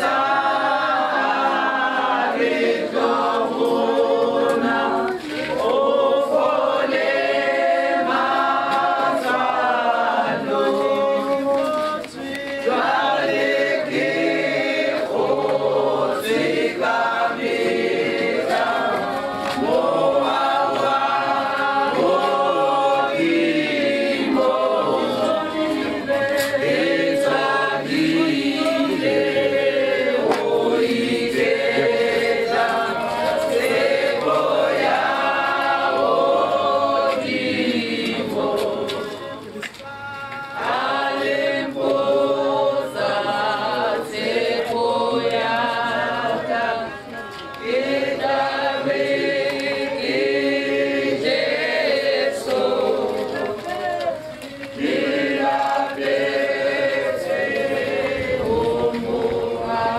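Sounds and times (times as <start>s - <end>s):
group singing a hymn: 0.0s - 59.9s.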